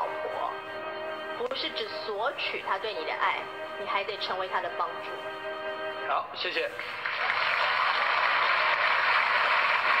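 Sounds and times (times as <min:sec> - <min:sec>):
audience applauding on television: 0:06.8 - 0:10.0.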